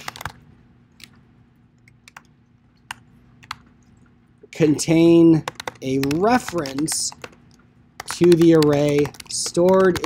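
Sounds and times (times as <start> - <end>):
computer keyboard keystrokes: 0.0 - 0.4, 1.8 - 2.3, 2.9 - 3.6, 5.4 - 10.0.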